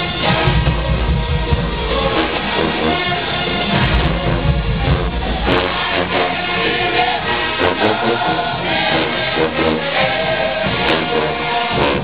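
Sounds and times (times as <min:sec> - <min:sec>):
marching band playing: 0:00.0 - 0:12.0.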